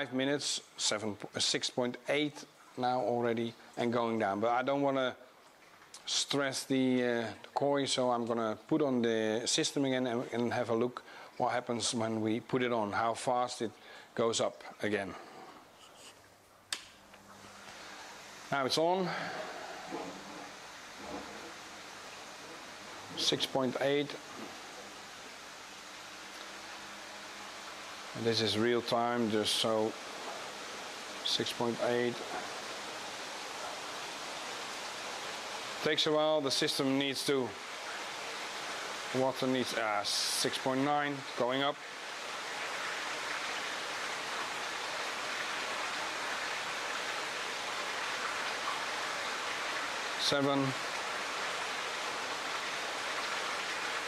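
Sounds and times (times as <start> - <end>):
water rushing through pond filter: 0.0 - 16.4, 17.2 - 54.0.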